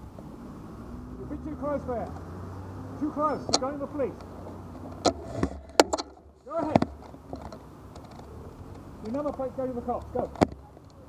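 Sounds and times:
low street rumble: 0.0s - 11.0s
light clicks and ticks: 2.0s - 2.3s, 3.4s - 6.2s, 6.8s - 11.0s.

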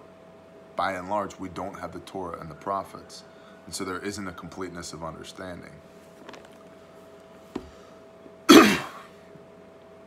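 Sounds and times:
man clearing throat: 8.5s - 9.1s.

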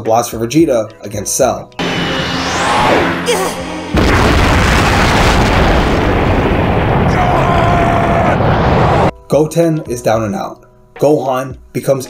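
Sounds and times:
explosion with sustained rumble: 3.8s - 9.1s.

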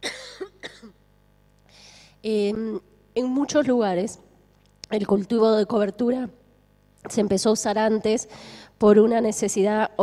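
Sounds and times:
woman coughing: 0.0s - 1.0s
faint breath: 1.7s - 2.2s, 8.3s - 8.8s.

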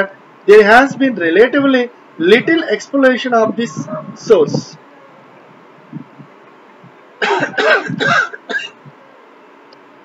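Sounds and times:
man coughing: 7.2s - 8.8s.

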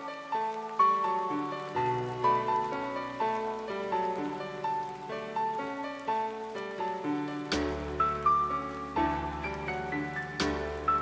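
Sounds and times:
slow melody over chords: 0.0s - 11.0s.

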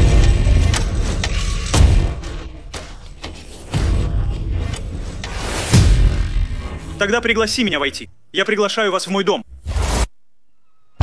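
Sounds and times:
low rumble: 0.0s - 7.1s.

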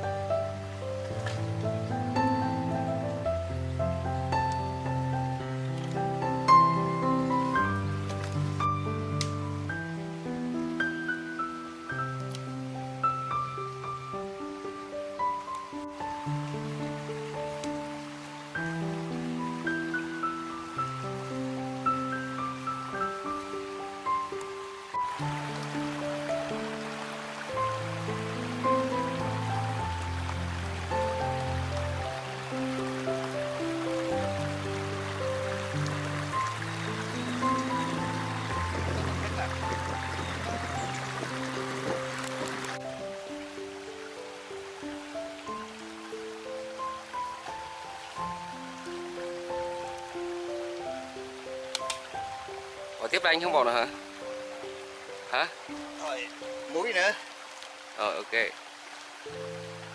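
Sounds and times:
background music: 0.0s - 59.9s
stream water flowing: 0.0s - 59.9s.

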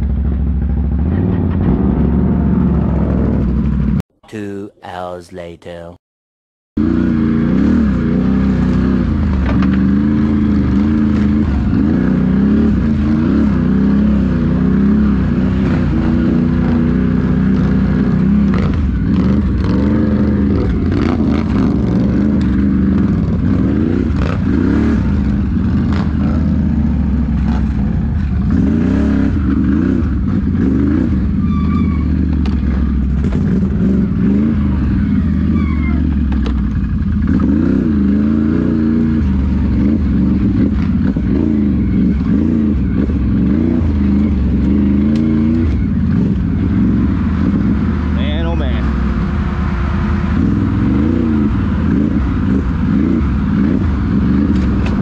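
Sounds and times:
atv engine revving: 0.0s - 4.0s, 6.8s - 55.0s.

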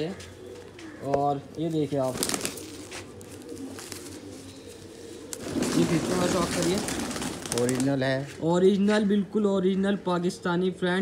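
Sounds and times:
pigeons cooing: 0.0s - 10.8s
bird wings rustling clatter: 2.0s - 4.5s, 5.2s - 7.9s.

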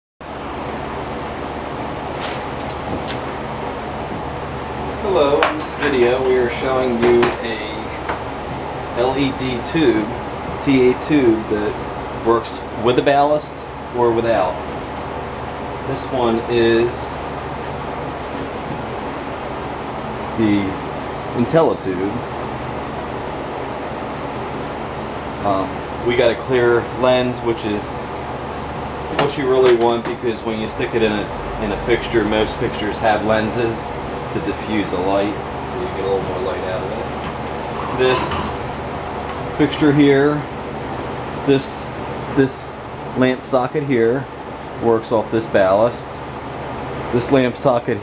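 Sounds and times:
steady hiss and hum: 0.2s - 48.0s.

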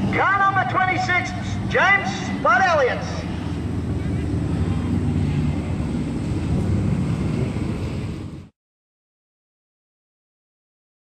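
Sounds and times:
car engine drone: 0.0s - 8.6s.

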